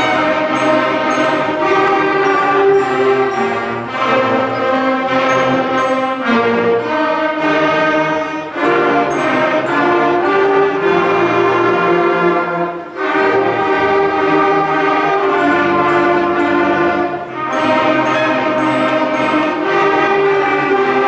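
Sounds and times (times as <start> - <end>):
concert band playing: 0.0 - 21.0.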